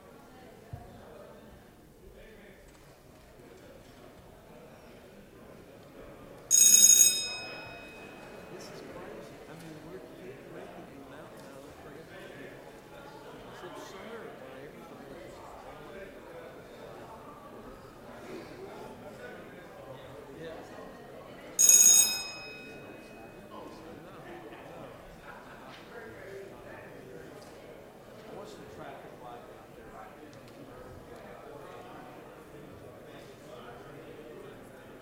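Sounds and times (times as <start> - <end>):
murmur of voices: 0.0 - 35.0
bell ringing: 6.5 - 8.6, 21.6 - 23.5.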